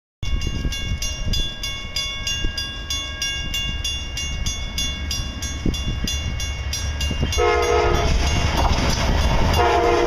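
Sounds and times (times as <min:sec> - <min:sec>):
railroad crossing bell ringing: 0:00.2 - 0:10.0.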